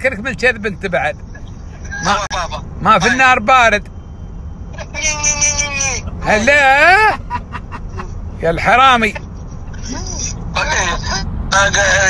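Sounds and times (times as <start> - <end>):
road rumble inside moving car: 0.0 - 12.0.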